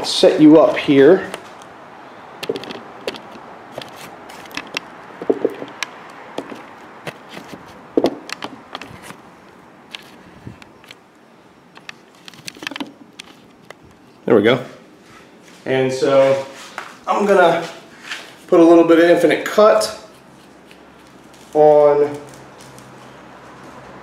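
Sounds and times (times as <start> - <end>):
camera handling clicks and knocks: 2.4 - 9.2, 11.7 - 13.8.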